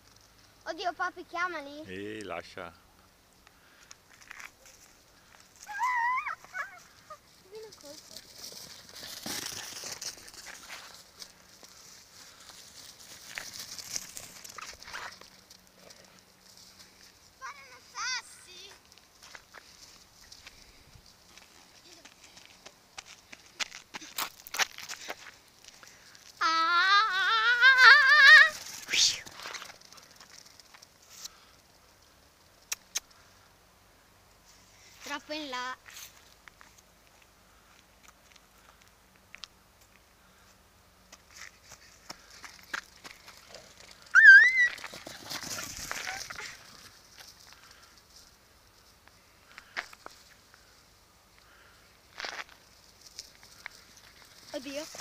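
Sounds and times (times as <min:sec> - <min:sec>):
faint outdoor hiss: 0:00.0 - 0:55.0
person calling out: 0:26.4 - 0:29.3.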